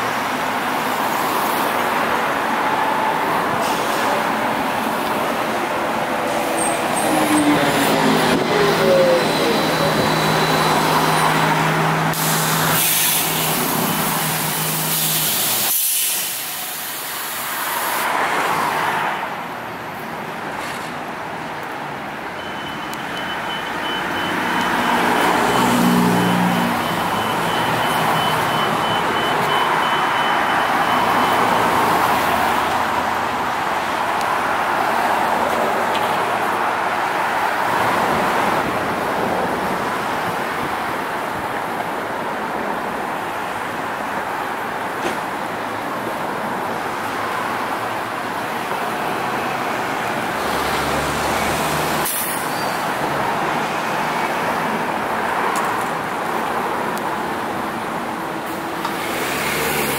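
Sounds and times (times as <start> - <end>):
cars passing: 0.0 - 59.9
trolleybus driving: 0.0 - 59.9.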